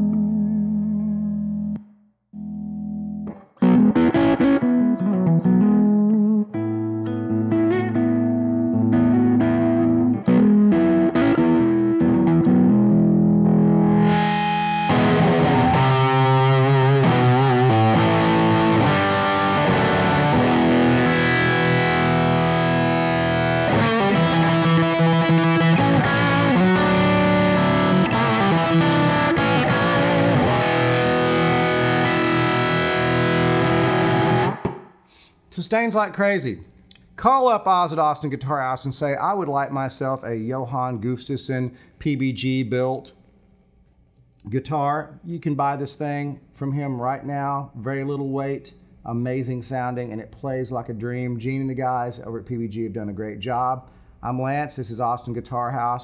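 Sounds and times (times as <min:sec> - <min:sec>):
electric guitar through amplifier: 0:02.4 - 0:34.9.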